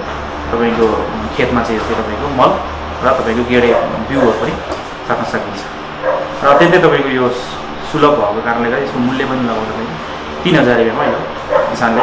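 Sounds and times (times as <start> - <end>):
man speaking: 0.5 - 12.0.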